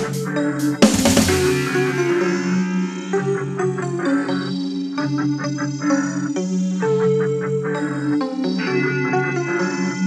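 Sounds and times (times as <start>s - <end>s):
instrumental electronic music: 0.0s - 10.0s.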